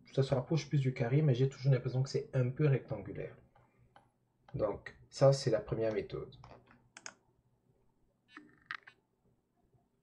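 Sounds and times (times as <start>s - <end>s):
faint computer clicks: 5.8s - 7.2s.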